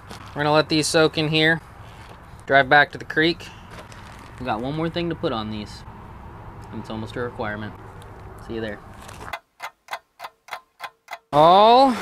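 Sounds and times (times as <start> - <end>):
outdoor background noise: 0.0 - 12.0
clock ticking: 9.3 - 11.4.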